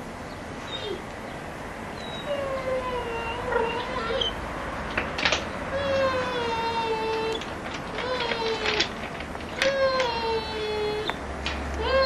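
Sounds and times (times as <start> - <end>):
puppy whining: 0.6 - 1.1, 2.0 - 4.4, 5.7 - 11.2, 11.8 - 12.0.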